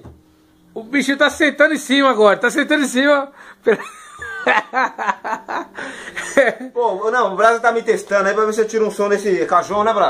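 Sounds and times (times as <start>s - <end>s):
man laughing: 3.7s - 6.8s.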